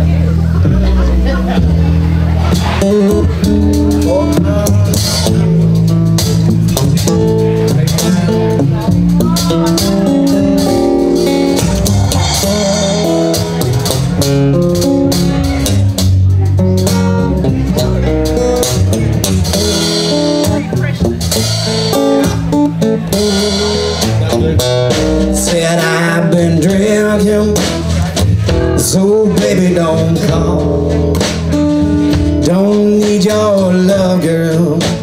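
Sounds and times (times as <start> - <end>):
acoustic guitar: 0.0 - 35.0
drum kit steady beat: 0.0 - 35.0
plucked double bass: 0.0 - 35.0.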